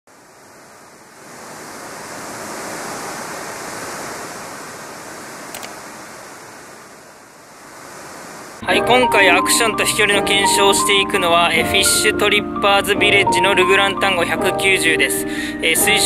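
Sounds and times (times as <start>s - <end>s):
ocean surf washing in: 0.1s - 9.0s
sharp click: 5.5s - 5.8s.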